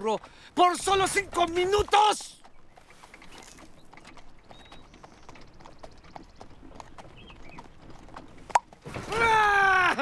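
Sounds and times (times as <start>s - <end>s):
horse hooves clip-clopping: 0.0s - 9.1s.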